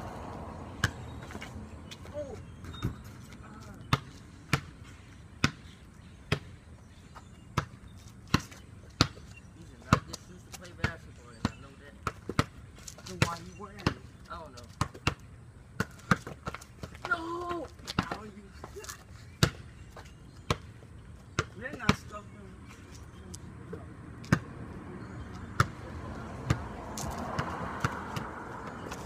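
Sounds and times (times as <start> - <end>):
basketball bouncing on concrete: 0.7 - 6.6, 7.2 - 18.8, 19.4 - 22.2, 23.7 - 29.0.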